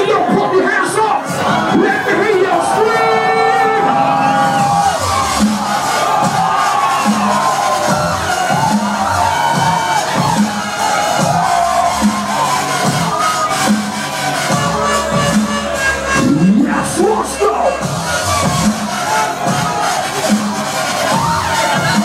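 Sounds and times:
crowd cheering: 0:00.0 - 0:22.0
dubstep over club sound system: 0:00.5 - 0:22.0
repeating bass note: 0:14.5 - 0:19.6.

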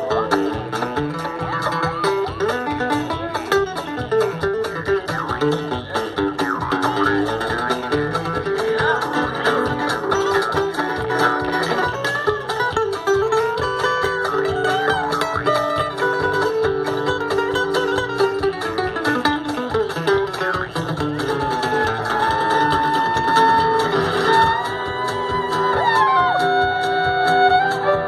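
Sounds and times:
fiddle melody: 0:00.0 - 0:28.0
string band playing instrumental: 0:00.0 - 0:28.0
harmonica melody: 0:22.2 - 0:28.0.

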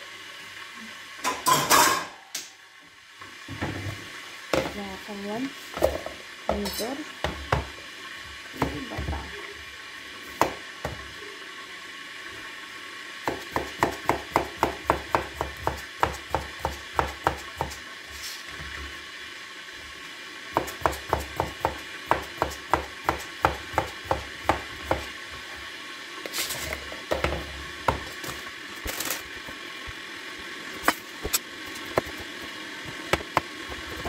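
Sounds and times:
knife chopping on cutting board: 0:10.4 - 0:11.0, 0:13.3 - 0:17.8, 0:20.6 - 0:25.1.

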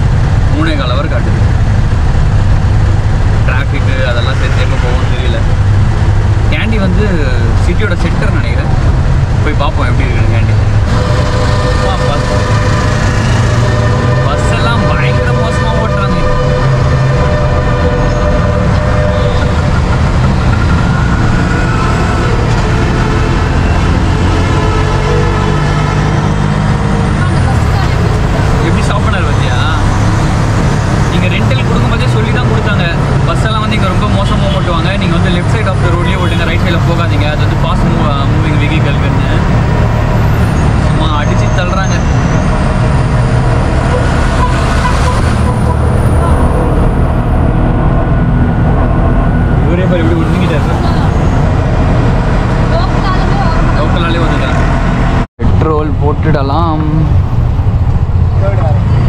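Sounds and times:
tyre and traffic noise: 0:00.0 - 0:59.0.

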